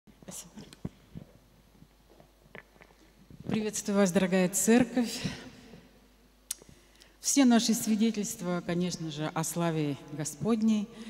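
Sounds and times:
person whispering: 0.2 - 0.8.

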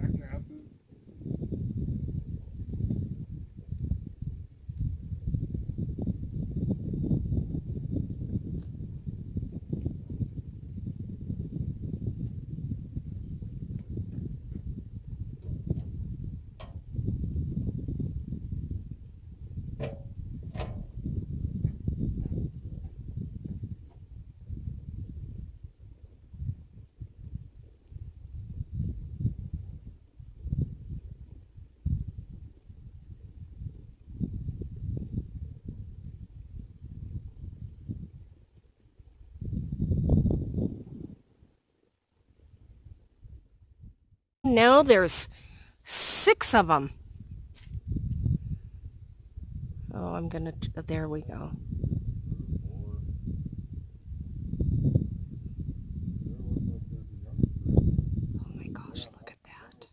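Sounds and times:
wind buffeting microphone: 0.0 - 41.6, 42.3 - 45.9, 46.6 - 59.9.

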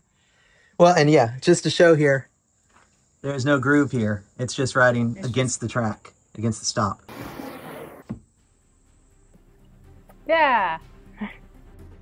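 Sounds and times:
window sash sliding scrape: 7.1 - 8.2.

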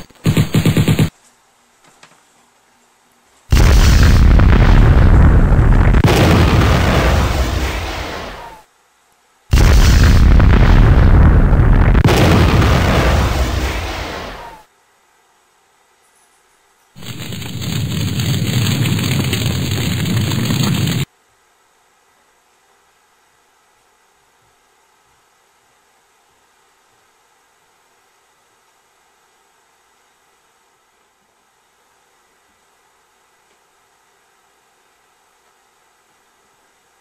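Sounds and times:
explosion blasts: 3.5 - 8.6, 9.5 - 14.6, 17.0 - 21.1
steady loud noise: 3.5 - 8.7, 9.5 - 14.7, 17.0 - 21.1.

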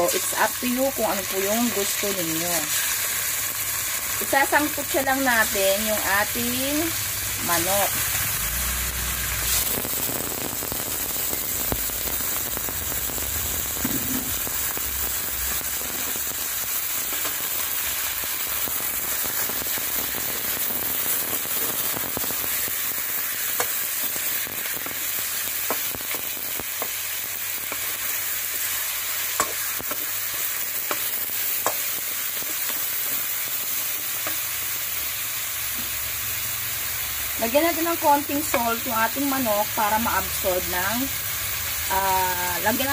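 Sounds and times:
frying sizzle with pops: 0.0 - 42.9.

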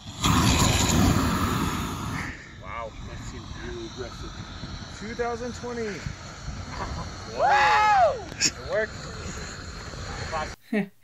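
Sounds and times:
flamethrower whoosh: 0.0 - 10.6.

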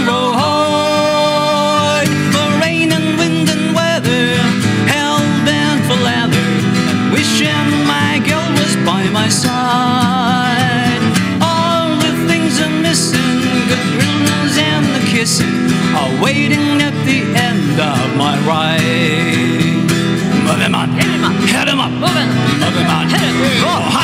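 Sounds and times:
acoustic guitars strummed: 0.0 - 24.0
people singing: 0.0 - 24.0.

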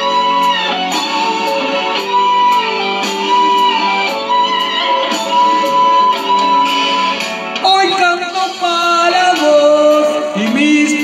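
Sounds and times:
instrumental backing track: 0.0 - 11.0.

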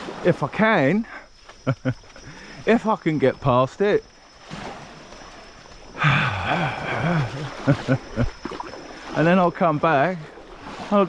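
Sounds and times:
man laughing: 1.6 - 2.4, 6.0 - 8.4.

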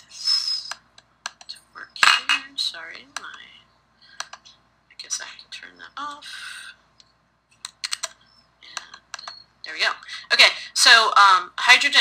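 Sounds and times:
computer keys clicking: 0.7 - 1.6, 4.2 - 4.5, 7.0 - 9.4.

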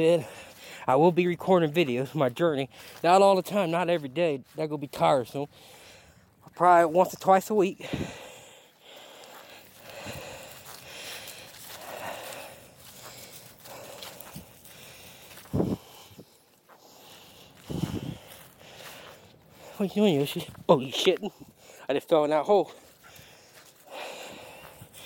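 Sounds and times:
footsteps on grass: 0.0 - 25.0.

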